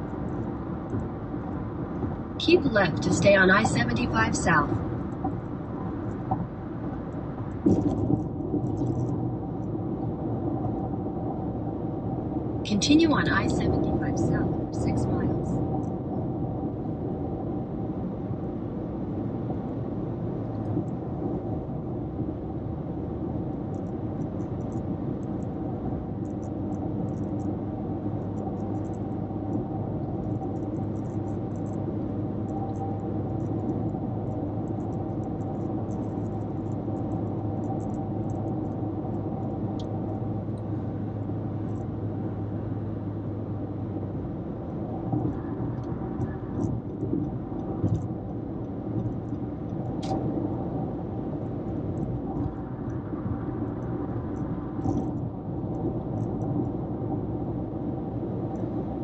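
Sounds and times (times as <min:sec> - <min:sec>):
car cabin road noise: 0:00.0 - 0:59.0
low hum: 0:00.0 - 0:59.0.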